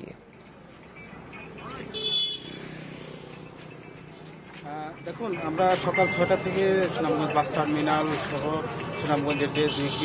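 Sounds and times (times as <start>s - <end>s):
vehicle horn toot: 1.9s - 2.6s.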